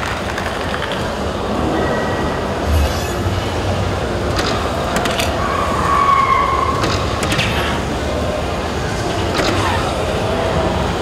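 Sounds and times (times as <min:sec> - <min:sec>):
crowd and machine hubbub: 0:00.0 - 0:11.0.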